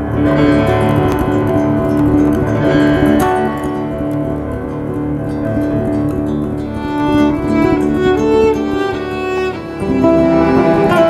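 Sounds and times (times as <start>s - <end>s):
acoustic guitar chords: 0.0s - 11.0s
piano: 0.0s - 11.0s.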